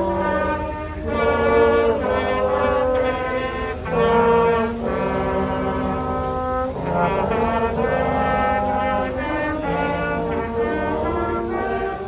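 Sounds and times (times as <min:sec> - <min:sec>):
brass band playing slow chords: 0:00.0 - 0:12.0.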